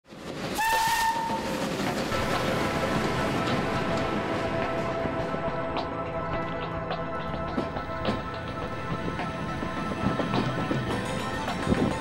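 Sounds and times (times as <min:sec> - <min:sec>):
rushing steam and train: 0:00.1 - 0:12.0
steam locomotive whistle: 0:00.6 - 0:01.6.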